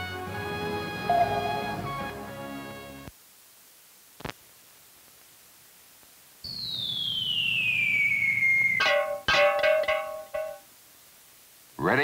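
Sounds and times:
whistle sliding down in pitch: 0:01.1 - 0:02.0, 0:06.5 - 0:08.8
twangy plucked notes: 0:08.8 - 0:10.7.

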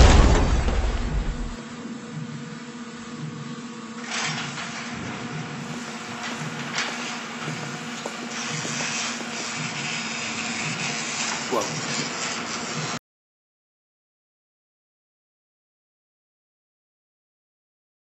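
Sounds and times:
loud rushing hiss: 0:05.6 - 0:13.0.

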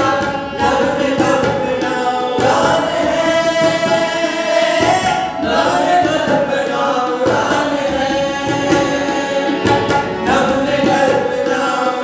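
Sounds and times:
harmonium: 0:00.0 - 0:12.0
male voices singing together: 0:00.0 - 0:12.0
tabla strokes: 0:00.0 - 0:12.0.

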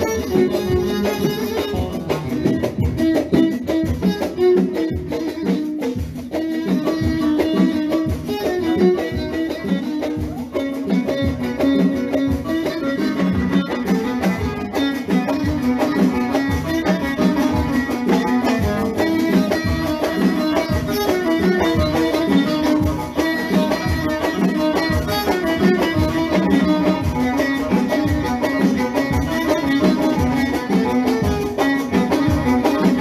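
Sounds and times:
steady drum beat: 0:00.0 - 0:33.0
violin melody: 0:00.0 - 0:33.0.

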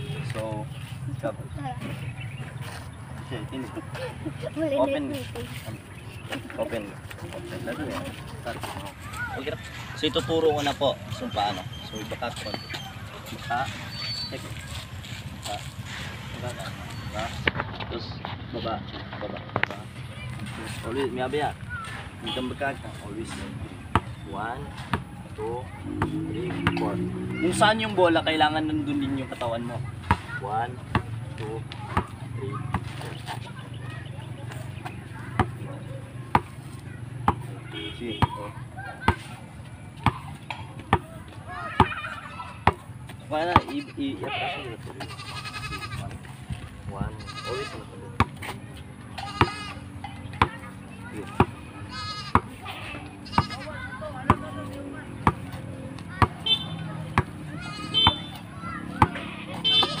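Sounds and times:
basketball bouncing on concrete: 0:23.9 - 0:24.2, 0:30.0 - 0:33.0, 0:34.9 - 0:39.3, 0:40.0 - 0:43.7, 0:48.2 - 0:48.5, 0:49.1 - 0:49.7, 0:50.3 - 0:51.6, 0:52.3 - 0:52.6, 0:54.2 - 0:54.5, 0:55.1 - 0:57.4, 0:58.0 - 1:00.0.

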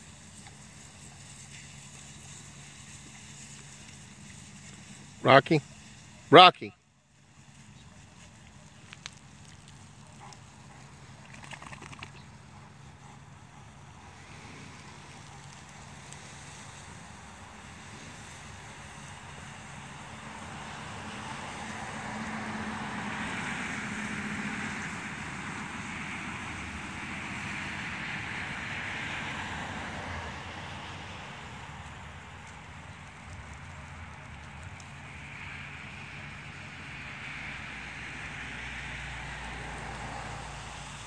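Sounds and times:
lawn sprinkler spraying water: 0:00.0 - 0:41.0.

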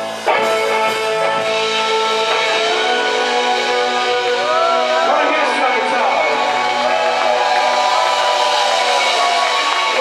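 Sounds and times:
live rock band playing: 0:00.0 - 0:10.0.

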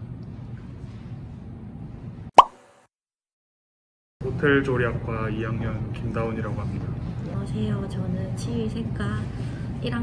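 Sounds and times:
pop with upward blip: 0:02.4 - 0:02.6.

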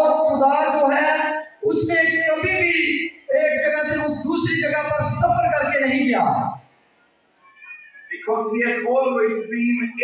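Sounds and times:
man speaking over microphone: 0:00.0 - 0:06.7, 0:08.0 - 0:10.0.

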